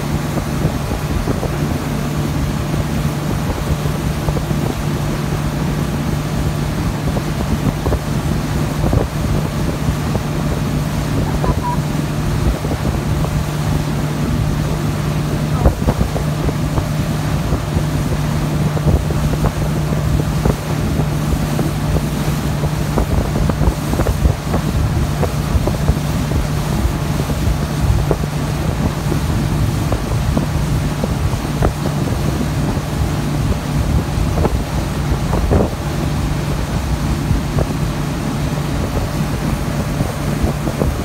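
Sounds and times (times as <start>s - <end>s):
boat wake churning: 0.0s - 41.0s
motorboat engine droning: 0.0s - 41.0s
wind buffeting microphone: 0.0s - 41.0s.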